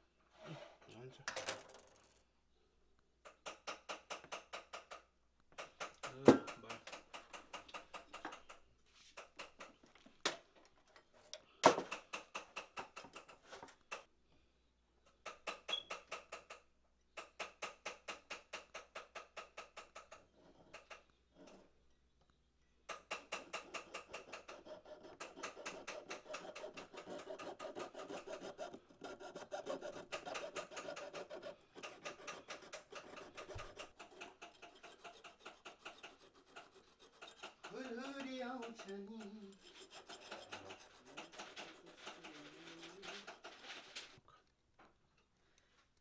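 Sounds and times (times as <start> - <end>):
hand file rasping on metal: 23.0 - 44.2
piercing saw cutting metal tube: 23.1 - 44.2.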